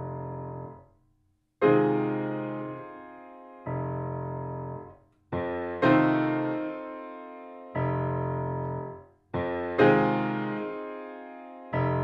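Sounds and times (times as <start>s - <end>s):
grand piano chords: 1.6s - 12.0s.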